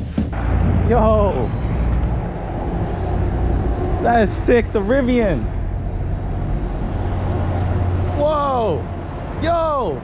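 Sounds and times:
low vehicle rumble: 0.0s - 10.0s.

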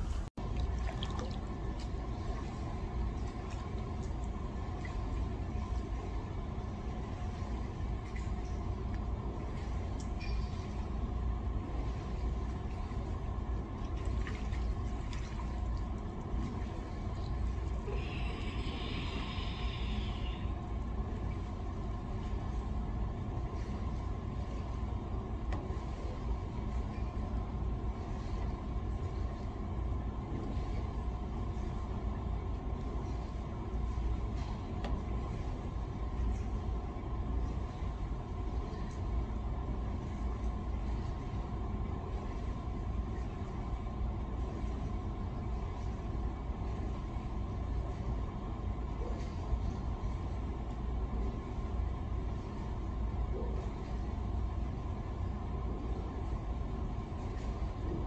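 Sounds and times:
pool machinery rumble: 0.0s - 58.0s
water splash: 0.4s - 1.9s.

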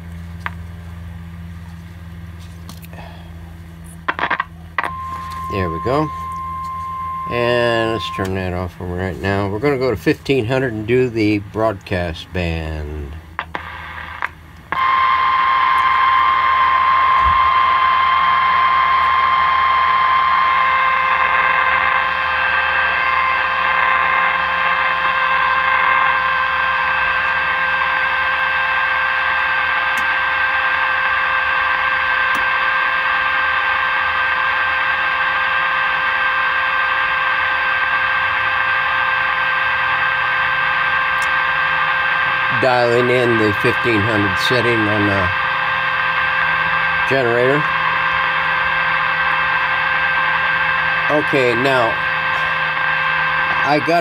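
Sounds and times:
radio loudspeaker hiss: 2.8s - 54.0s
steady test signal whistle: 4.8s - 9.5s, 14.7s - 54.0s.

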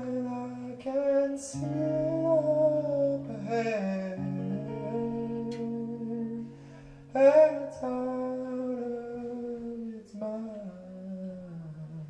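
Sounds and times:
man singing long held note: 0.0s - 12.0s.

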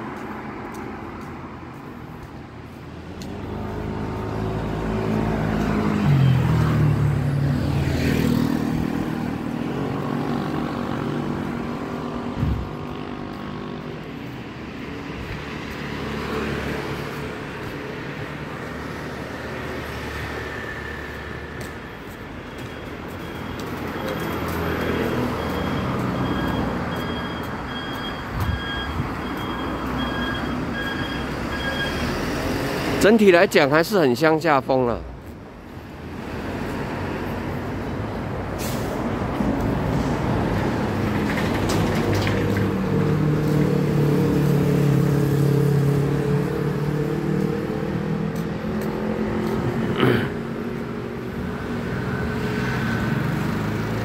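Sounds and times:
vehicles passing close by: 0.0s - 54.0s.

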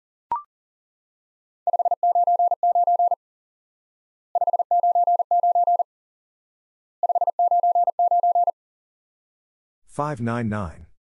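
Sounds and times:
morse code beeps: 1.7s - 3.2s, 4.4s - 5.8s, 7.0s - 8.5s.

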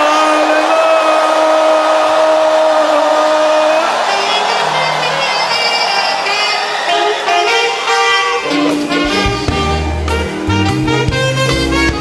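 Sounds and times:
live band with brass horns: 0.0s - 12.0s.

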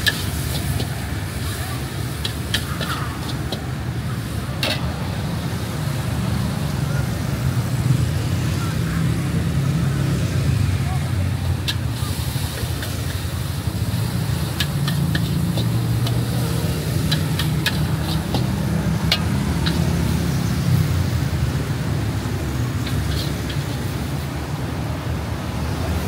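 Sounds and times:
metal spatula scraping a wok: 0.0s - 4.9s, 11.6s - 24.4s
gas burner rumble: 0.0s - 26.0s
street traffic: 0.0s - 26.0s.

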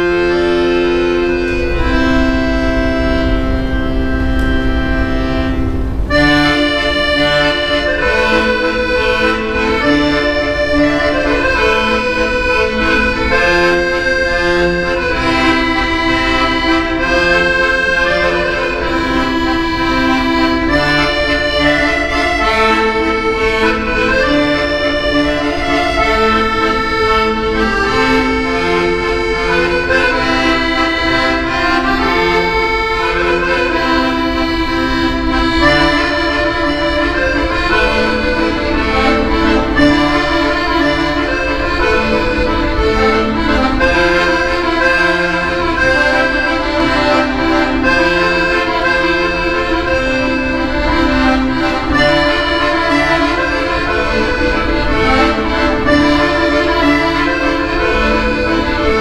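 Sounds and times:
piano accordion playing: 0.0s - 59.0s.

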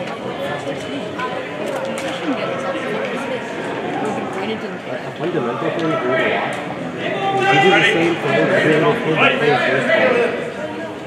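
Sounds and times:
people talking in a hall: 0.0s - 11.0s.

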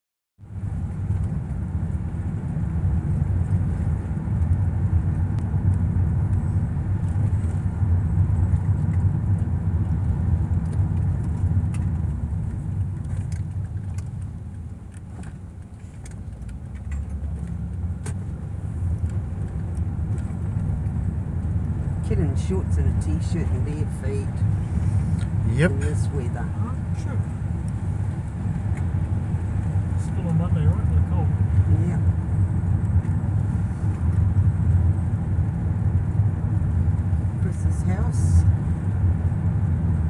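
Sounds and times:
car road and engine noise: 0.4s - 40.0s.

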